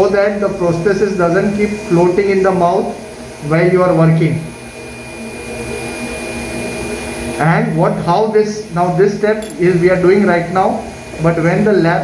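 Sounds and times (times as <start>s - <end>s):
machine running with rushing noise: 0.0s - 12.0s.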